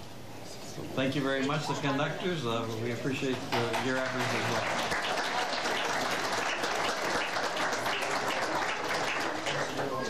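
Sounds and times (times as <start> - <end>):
audience applauding: 3.2 - 10.0.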